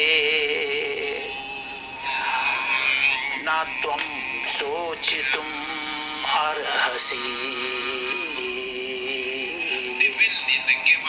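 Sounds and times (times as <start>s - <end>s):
man chanting a long note: 0.0s - 10.6s.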